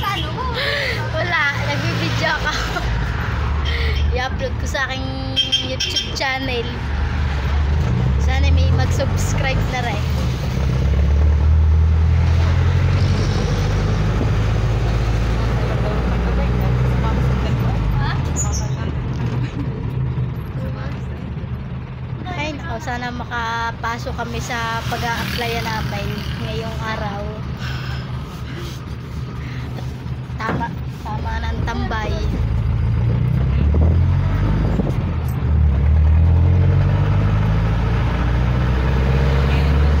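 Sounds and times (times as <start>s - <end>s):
vehicle engine and road rumble: 0.0s - 40.0s.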